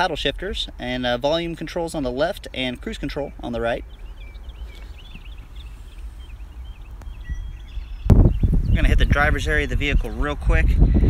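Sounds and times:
low outdoor rumble: 0:00.0 - 0:11.0
small birds chirping: 0:00.8 - 0:11.0.

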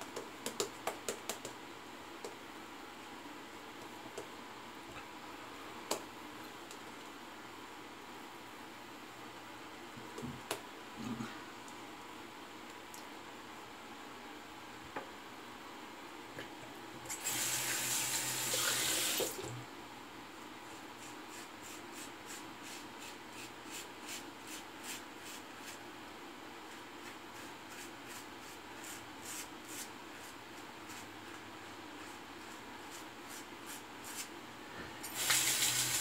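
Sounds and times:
sink tap running: 0:35.1 - 0:36.0.

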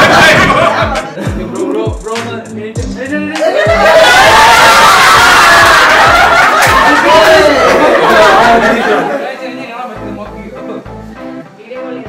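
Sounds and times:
people talking and laughing loudly: 0:00.0 - 0:01.9, 0:03.2 - 0:10.2.

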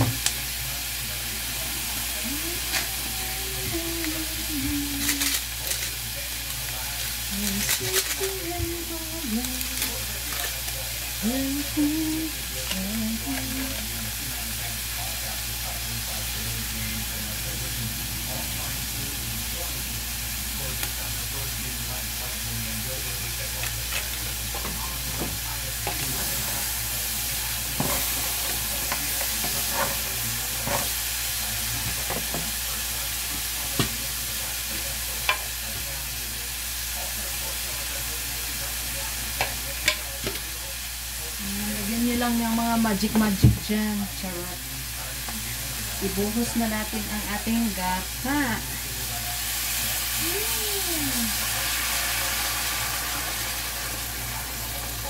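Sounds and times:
crabs sizzling in a pan: 0:00.0 - 0:55.0.

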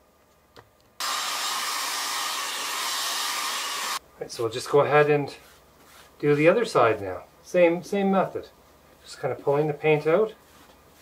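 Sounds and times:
hair dryer blowing air: 0:01.0 - 0:04.0.

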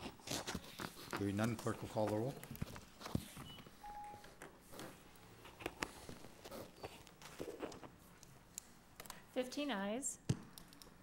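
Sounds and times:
faint electronic beeps: 0:03.4 - 0:04.3.

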